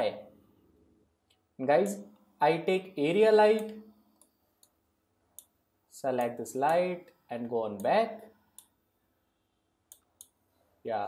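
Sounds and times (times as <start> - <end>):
computer mouse clicks: 9.9 - 10.4.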